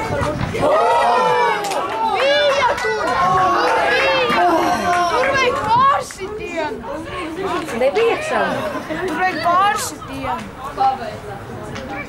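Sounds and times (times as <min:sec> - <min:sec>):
high-pitched voices chattering: 0:02.0 - 0:12.0.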